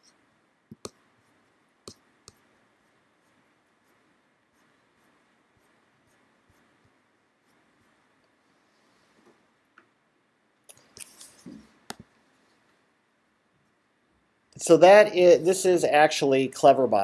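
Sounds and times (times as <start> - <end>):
room hiss: 0.0 - 17.0
computer mouse clicks: 0.7 - 1.0, 1.8 - 2.5.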